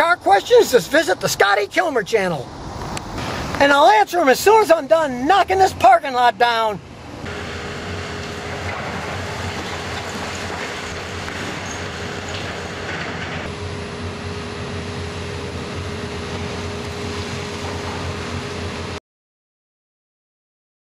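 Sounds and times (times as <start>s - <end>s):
excavator engine and hydraulics whine: 0.0s - 19.0s.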